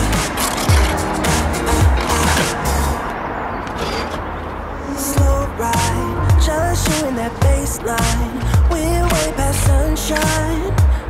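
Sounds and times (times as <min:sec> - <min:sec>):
pop music with deep bass: 0:00.0 - 0:03.0, 0:04.8 - 0:11.0.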